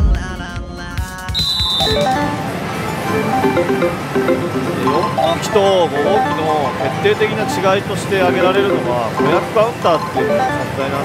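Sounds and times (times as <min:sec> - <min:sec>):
high beep: 0:01.7 - 0:11.0
electronic music: 0:01.8 - 0:11.0
gaming hall din: 0:01.8 - 0:11.0.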